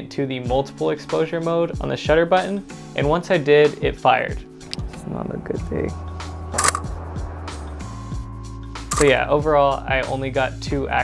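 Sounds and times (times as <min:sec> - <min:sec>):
background music with low notes: 0:00.0 - 0:11.0
camera shutter click: 0:06.6 - 0:06.9, 0:08.9 - 0:09.2.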